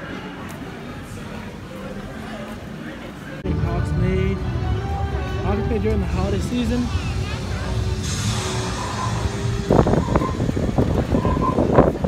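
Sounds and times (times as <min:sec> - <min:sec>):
crowd voices: 0:00.0 - 0:12.0
wind rumble on microphone: 0:08.7 - 0:12.0.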